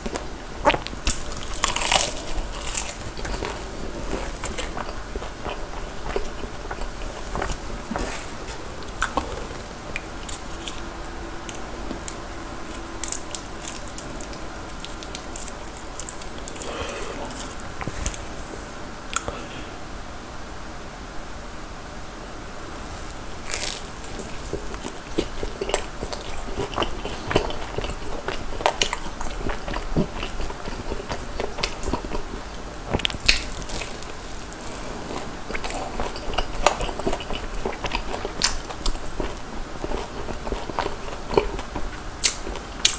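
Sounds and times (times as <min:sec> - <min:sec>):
close chewing and crunching: 0:00.0 - 0:18.5, 0:22.8 - 0:42.9.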